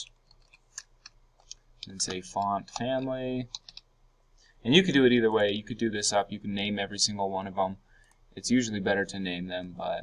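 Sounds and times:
keyboard typing: 0.0s - 3.9s.

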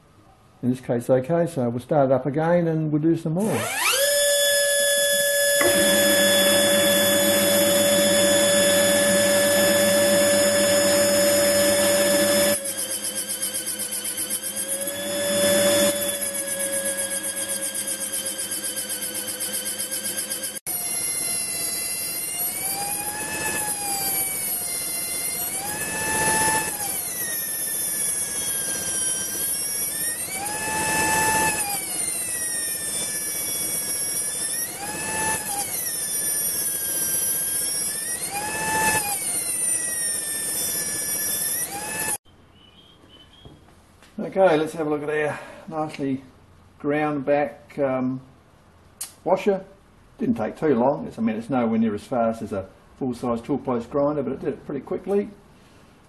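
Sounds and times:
air die grinder whining: 3.4s - 42.2s.

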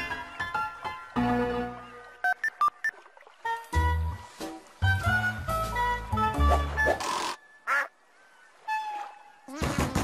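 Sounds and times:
nasal quack-like squawk: 7.1s - 7.9s.

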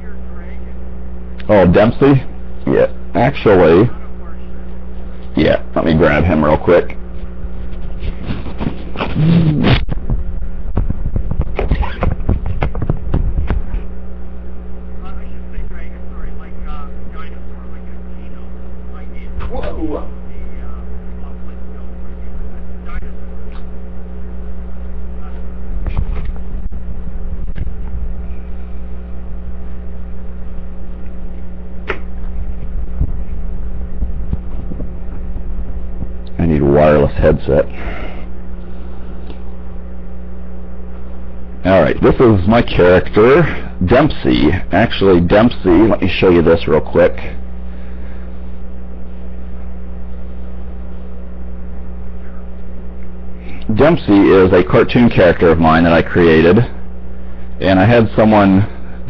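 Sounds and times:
low electrical hum: 0.0s - 59.0s.

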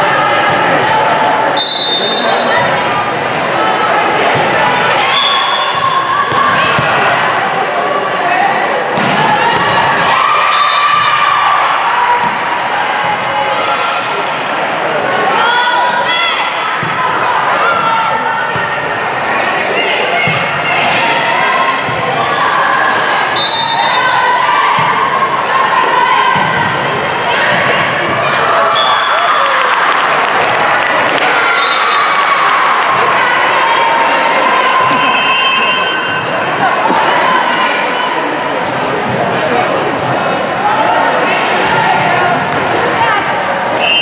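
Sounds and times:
players calling and shouting: 0.0s - 44.0s
spectator chatter: 0.0s - 44.0s.

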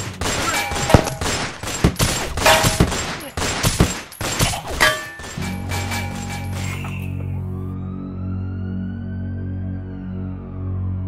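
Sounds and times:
gunshots: 0.0s - 6.9s.

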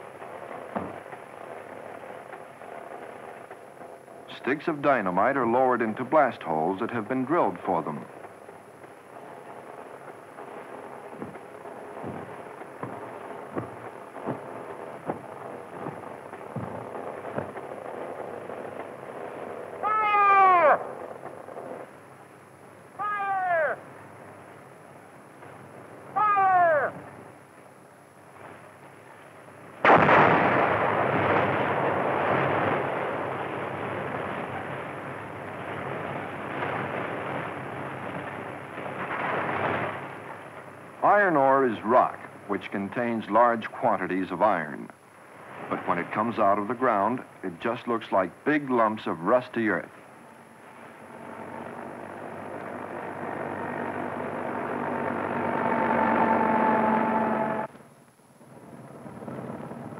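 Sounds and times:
dynamite blast rumbling: 0.0s - 27.5s, 28.2s - 43.7s, 58.4s - 59.9s.

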